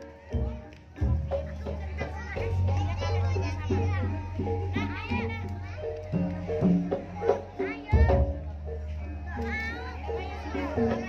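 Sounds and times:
children calling out: 0:00.0 - 0:11.0
gamelan music: 0:00.0 - 0:11.0.

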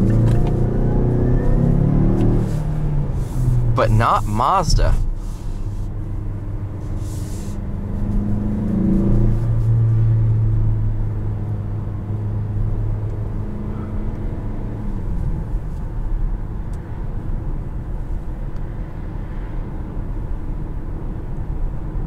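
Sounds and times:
car engine hum: 0:00.0 - 0:22.0.

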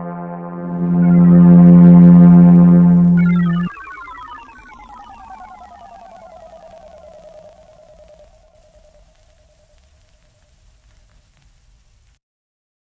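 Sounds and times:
electronic tone sliding down: 0:00.0 - 0:08.9.

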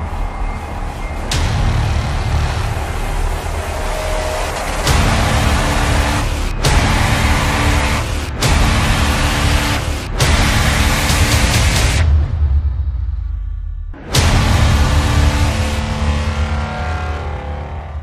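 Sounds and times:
heavy bass: 0:00.0 - 0:18.0
rushing noise: 0:00.0 - 0:18.0.

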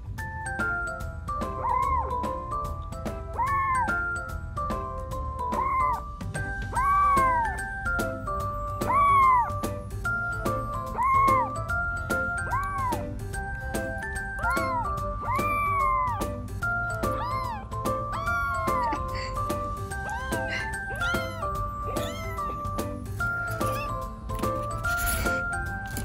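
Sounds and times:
light background music: 0:00.0 - 0:26.0
kitten meowing: 0:01.5 - 0:02.4, 0:03.3 - 0:04.1, 0:05.5 - 0:06.0, 0:06.7 - 0:07.8, 0:08.7 - 0:09.6, 0:10.4 - 0:13.1, 0:14.0 - 0:24.0.

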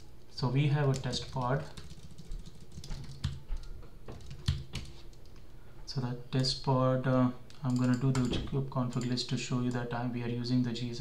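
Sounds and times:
keyboard keystrokes clicking: 0:00.9 - 0:05.3, 0:07.7 - 0:09.1.

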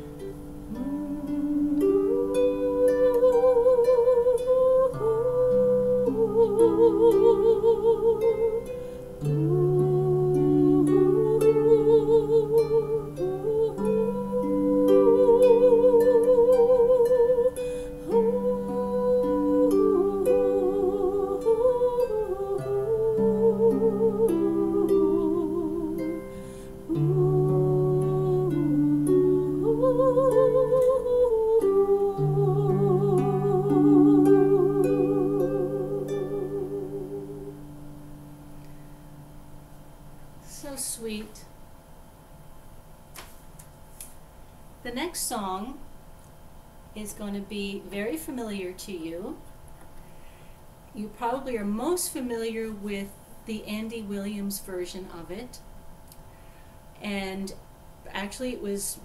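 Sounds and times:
woman singing with vibrato: 0:00.0 - 0:38.4, 0:40.4 - 0:41.5
woman humming: 0:00.0 - 0:38.8
harp plucked by hand: 0:00.0 - 0:39.3.

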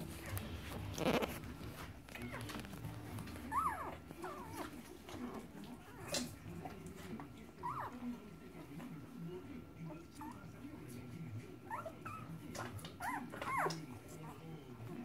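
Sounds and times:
soft rustling on bedding: 0:00.0 - 0:07.4
puppies whimpering: 0:00.1 - 0:06.8, 0:07.5 - 0:08.1, 0:11.6 - 0:14.4.

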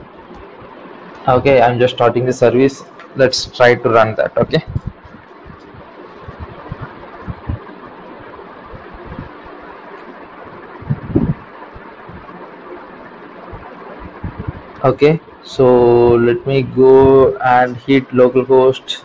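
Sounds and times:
microphone hiss: 0:00.0 - 0:19.0.

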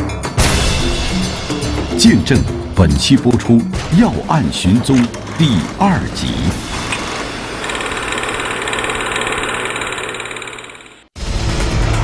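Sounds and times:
mechanical rattling whirring: 0:04.9 - 0:11.2.

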